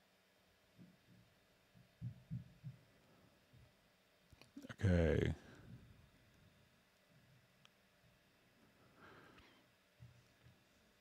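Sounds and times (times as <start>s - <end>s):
soft low thumps: 1.8s - 2.9s.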